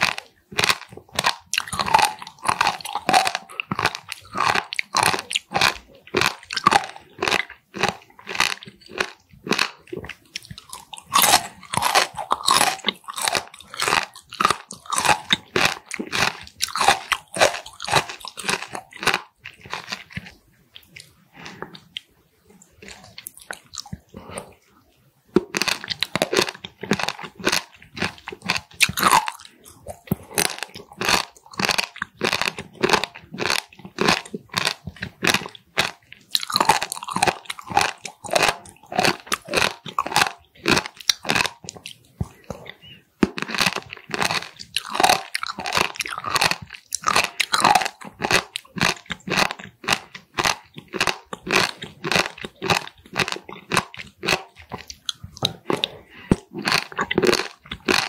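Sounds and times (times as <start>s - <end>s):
chewing crunchy food: 0.0s - 58.0s.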